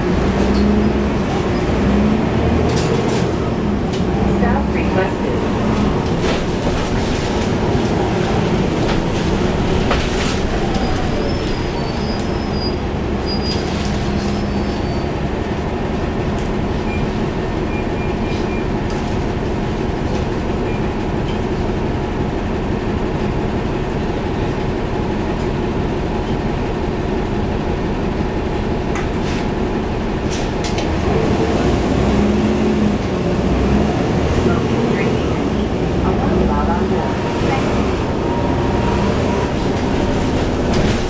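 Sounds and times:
bus diesel engine running: 0.0 - 41.0
road rumble: 0.0 - 41.0.

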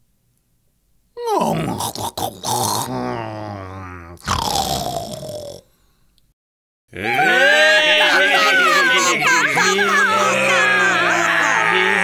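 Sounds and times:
man acting out snoring: 1.2 - 5.8.

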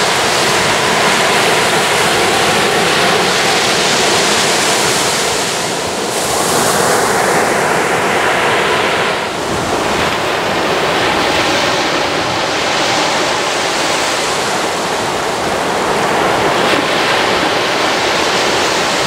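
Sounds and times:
small waves washing on sand: 0.0 - 19.0.

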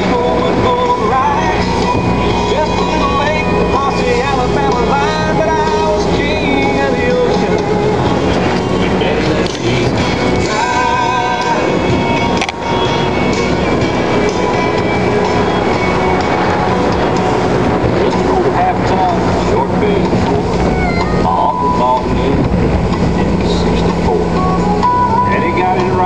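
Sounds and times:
boat through choppy water: 0.0 - 26.0
motorboat engine running: 0.0 - 26.0
song with singing voice: 0.0 - 26.0
wind: 0.0 - 26.0.

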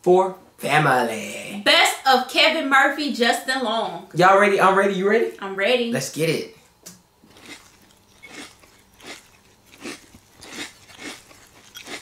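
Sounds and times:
person chewing food loudly: 7.2 - 12.0.

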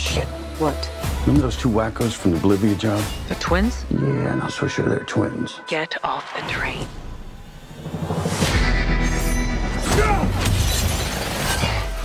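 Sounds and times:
film trailer music: 0.0 - 12.0
shattering crash: 8.2 - 12.0.

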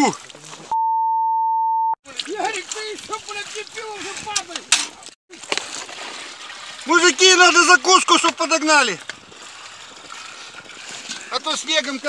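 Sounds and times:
censor beep: 0.7 - 2.0
men talking: 2.0 - 5.1, 6.8 - 9.0, 11.1 - 12.0.

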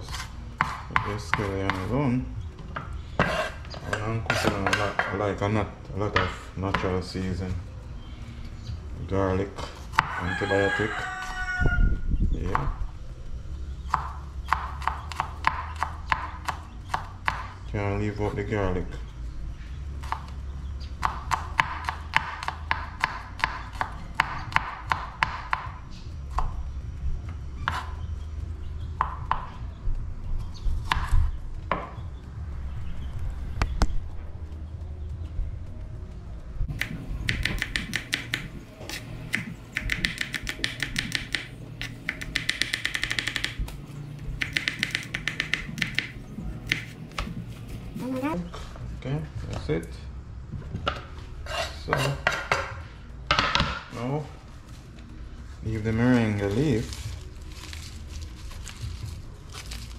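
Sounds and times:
knife chopping on wooden board: 0.1 - 1.9, 2.8 - 5.2, 13.9 - 17.5, 21.0 - 25.7, 36.8 - 43.7, 44.4 - 47.3.

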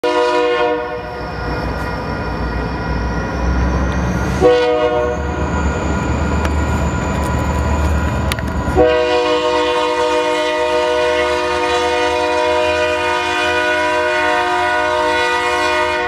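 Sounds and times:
locomotive horn blast: 0.0 - 1.1, 4.4 - 5.4, 8.8 - 16.0
locomotive engine rumble: 0.0 - 13.0.

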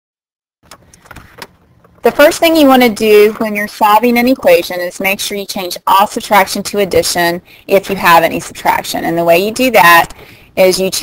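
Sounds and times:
faint clicks and knocks: 0.6 - 2.1
low background hiss: 1.4 - 11.0.

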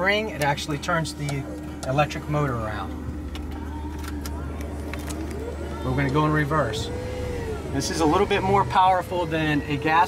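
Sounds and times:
electric motor hum: 0.0 - 10.0
faint motor whine: 0.0 - 10.0.

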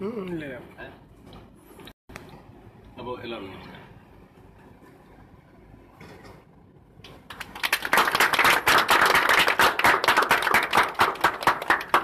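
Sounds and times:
people clapping: 7.0 - 12.0.

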